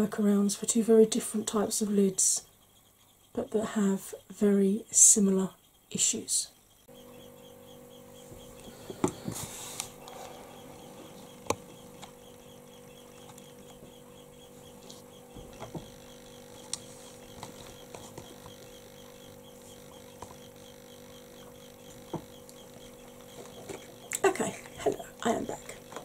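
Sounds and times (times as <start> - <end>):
faint electrical hum: 0.0 - 26.0.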